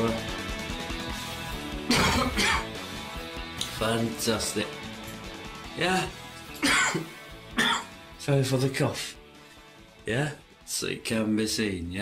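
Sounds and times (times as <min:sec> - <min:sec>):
background music: 0:00.0 - 0:12.0
man coughing: 0:01.9 - 0:02.7, 0:06.6 - 0:08.0.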